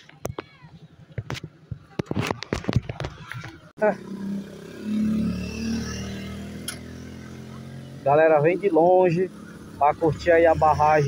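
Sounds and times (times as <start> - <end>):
motorcycle engine passing: 3.8 - 11.0.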